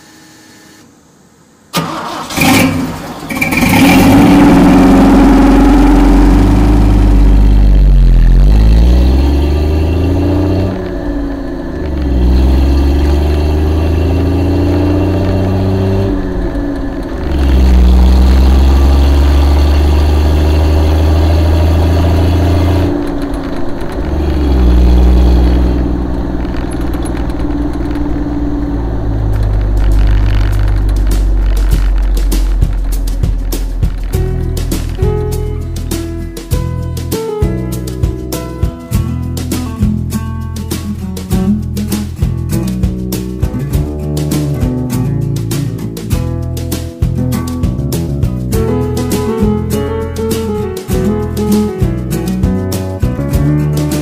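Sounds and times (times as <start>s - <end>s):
car engine starting and revving: 1.7s - 38.7s.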